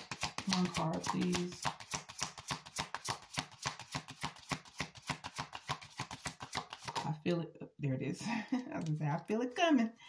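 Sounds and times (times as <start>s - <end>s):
cards being shuffled: 0.0s - 7.2s.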